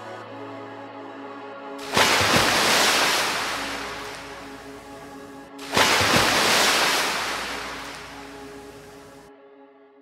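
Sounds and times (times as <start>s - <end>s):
soft background music: 0.0s - 10.0s
sea water washing over sand: 1.8s - 9.2s.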